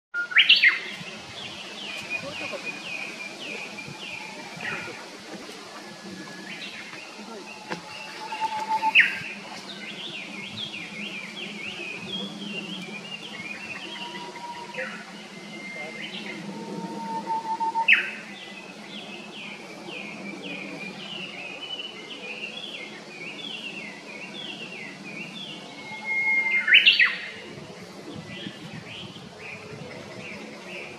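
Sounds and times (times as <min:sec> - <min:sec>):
songbirds chirping: 0:00.2 - 0:30.9
bird whistled call: 0:07.9 - 0:09.4, 0:12.6 - 0:18.3, 0:25.6 - 0:27.3.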